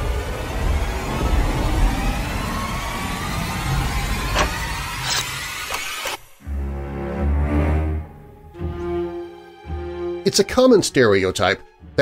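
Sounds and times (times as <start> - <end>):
deep rumbling: 0.0 - 5.2
faint rising tones: 0.0 - 10.2.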